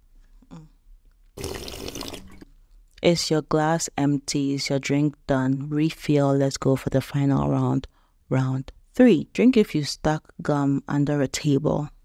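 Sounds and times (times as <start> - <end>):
slurping drink from a mug: 1.4 - 2.6.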